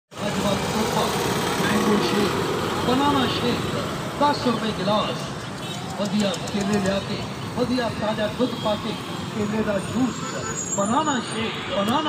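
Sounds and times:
car engines: 0.1s - 12.0s
people's voices: 0.1s - 12.0s
road noise: 0.1s - 12.0s.

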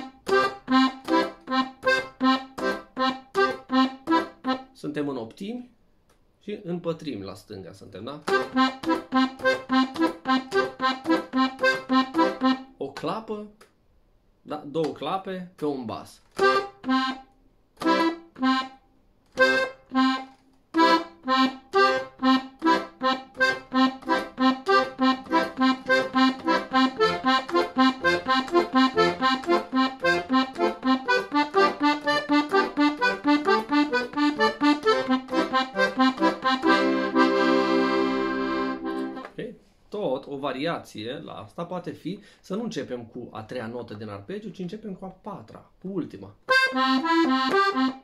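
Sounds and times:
accordion playing arpeggios: 0.0s - 4.8s, 8.2s - 12.7s, 16.3s - 39.4s, 46.5s - 48.0s.

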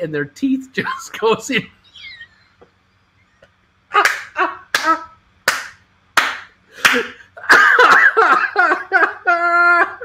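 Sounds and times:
man laughing hard: 0.8s - 2.6s, 3.9s - 5.2s, 6.8s - 10.0s.

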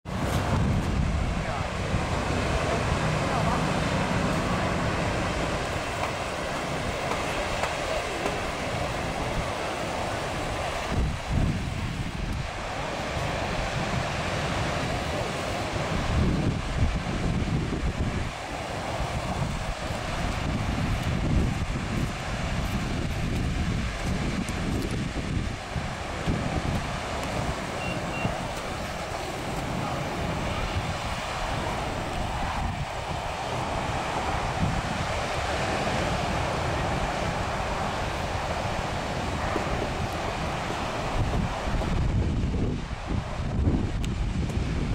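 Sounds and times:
ocean surf: 0.0s - 44.9s
wind gusting on microphone: 0.0s - 44.9s.

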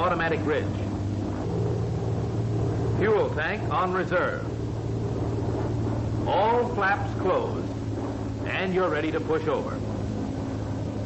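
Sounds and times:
aircraft radial engine drone: 0.0s - 11.0s.

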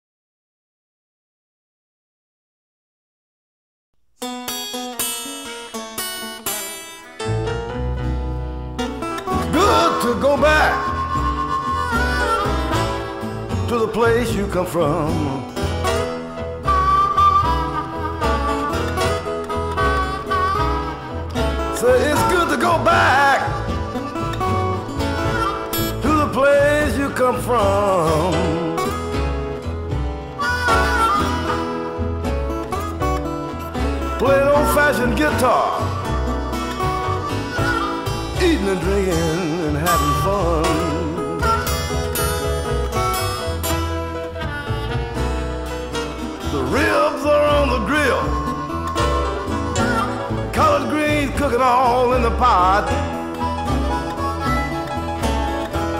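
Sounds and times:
blues band playing: 4.2s - 55.9s
bass line: 7.2s - 55.9s
person singing: 9.3s - 15.8s, 19.9s - 29.2s, 34.0s - 42.6s, 46.4s - 55.9s
drums: 21.4s - 35.5s.

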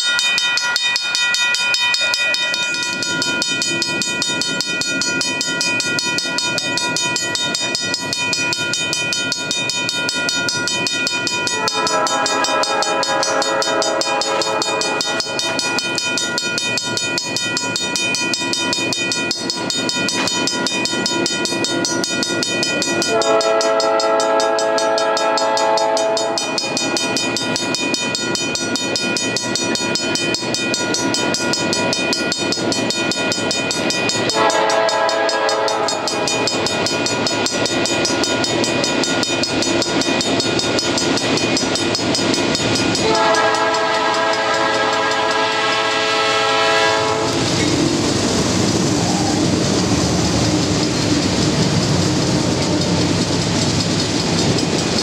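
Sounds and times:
train engine and wheel rumble: 0.0s - 55.0s
locomotive horn blasts: 11.5s - 15.6s, 23.1s - 26.5s, 34.3s - 36.3s, 43.0s - 47.5s.

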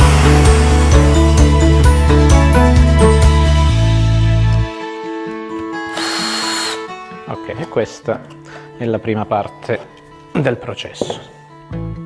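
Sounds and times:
cordless drill whining: 5.9s - 6.9s.

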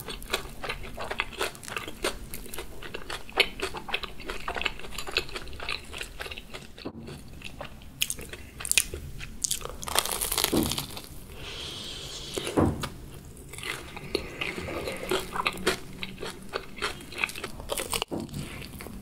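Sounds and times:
crunching and chewing: 0.0s - 19.0s.

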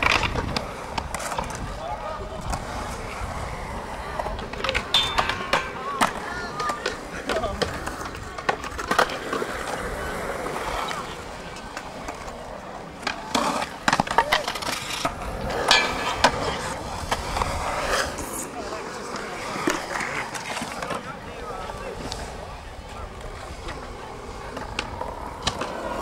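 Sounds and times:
skateboard wheels rolling: 0.0s - 26.0s
skateboards clacking: 0.0s - 26.0s.

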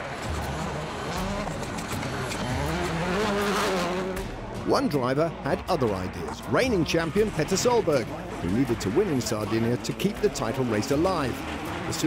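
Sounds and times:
rally car engine revving: 0.0s - 12.0s.

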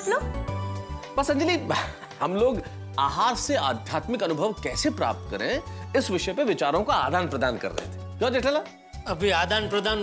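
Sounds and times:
sitcom music with bass line: 0.0s - 10.0s.

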